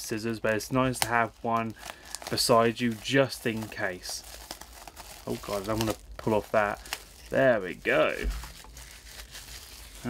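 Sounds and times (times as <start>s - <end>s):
plastic shrink wrap crinkling: 0.0s - 10.0s.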